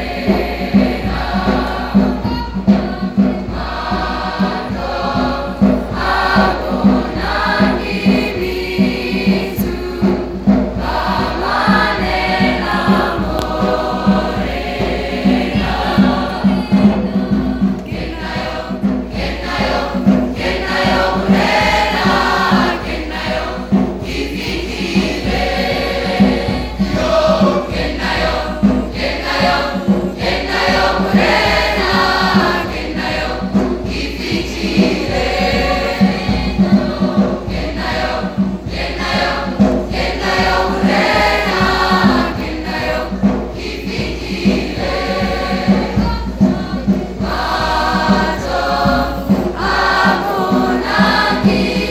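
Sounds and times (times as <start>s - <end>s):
choir singing in harmony: 0.0s - 51.9s
steady low beat: 0.0s - 51.9s.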